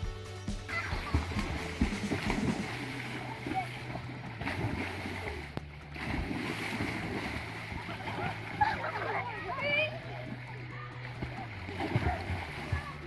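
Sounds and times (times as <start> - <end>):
background music with low notes: 0.0 - 13.0
water splashing: 0.7 - 13.0.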